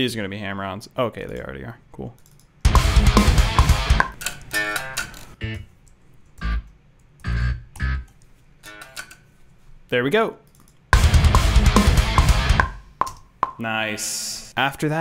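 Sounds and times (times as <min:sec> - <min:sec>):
programmed bass notes: 0:02.7 - 0:04.1, 0:05.4 - 0:05.7, 0:06.4 - 0:08.1, 0:11.0 - 0:12.9
down-tuned metal guitar riff: 0:02.7 - 0:05.6, 0:11.0 - 0:12.8.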